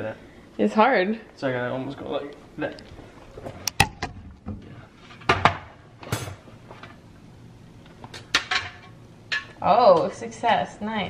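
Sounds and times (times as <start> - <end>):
metal pans clanking: 5.2 - 6.4, 8.2 - 10.0.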